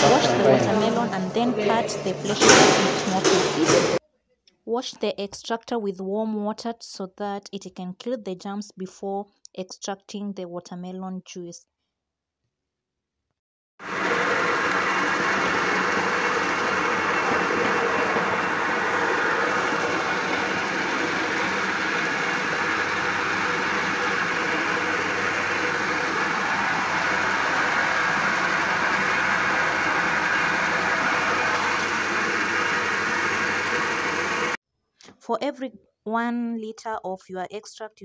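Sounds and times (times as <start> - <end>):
juice extractor crushing fruit: 13.8 - 34.6.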